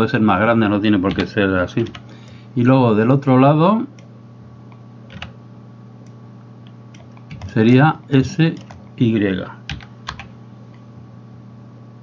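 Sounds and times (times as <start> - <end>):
keyboard key presses: 1.1 - 2.4, 5.1 - 5.3, 6.9 - 7.6, 8.5 - 8.9, 9.7 - 10.3.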